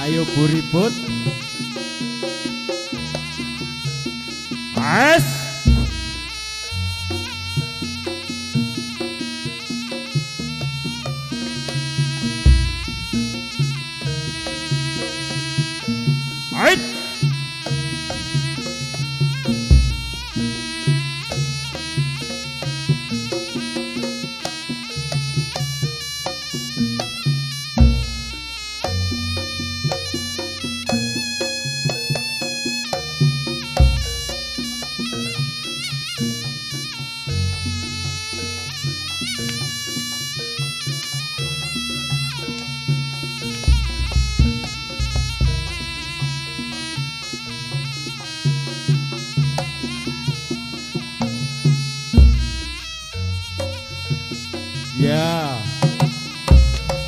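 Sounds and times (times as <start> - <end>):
shrill reed pipe melody: 0.0 - 21.7, 27.8 - 49.2, 51.1 - 57.0
drums and percussion: 0.0 - 57.0
deep drum strokes: 5.5 - 7.3, 12.3 - 14.6.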